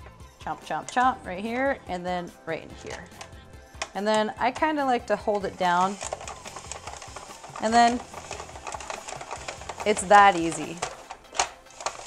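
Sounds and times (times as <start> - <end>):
spiralizer clicking and scraping: 4.1 - 12.0.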